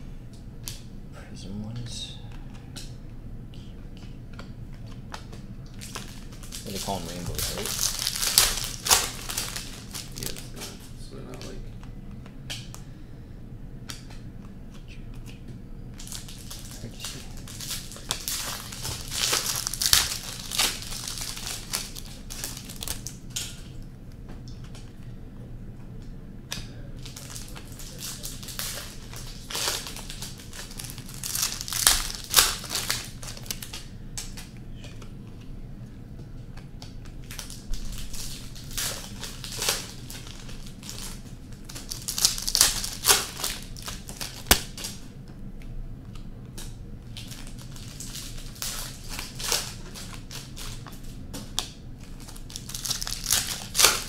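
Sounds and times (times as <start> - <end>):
wrappers crinkling: 5.1 - 11.5, 16.0 - 23.8, 27.0 - 34.5, 37.0 - 45.0, 47.0 - 54.0.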